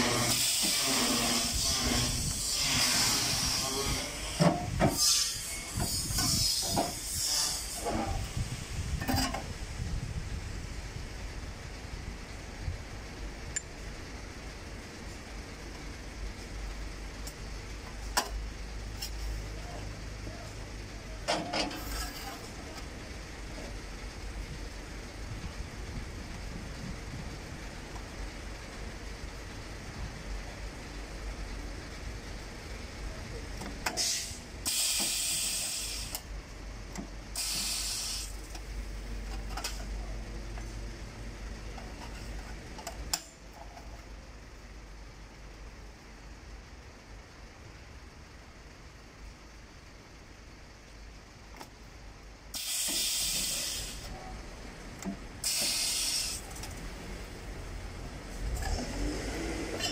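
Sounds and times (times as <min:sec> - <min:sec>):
short hissing bursts: 0:34.0 - 0:36.2, 0:37.3 - 0:38.5, 0:52.5 - 0:54.1, 0:55.4 - 0:56.6.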